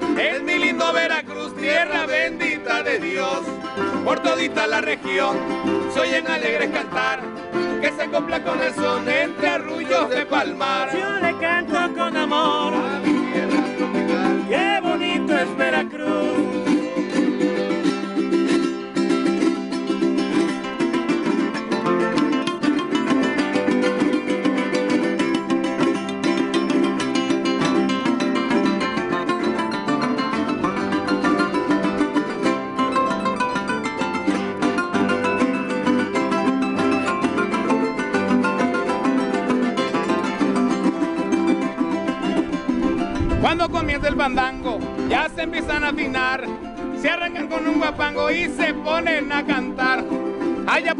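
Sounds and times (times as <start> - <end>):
voices singing: 0.0 - 18.0, 43.5 - 50.9
jaranas strummed fast: 0.0 - 50.9
harp: 16.0 - 43.4.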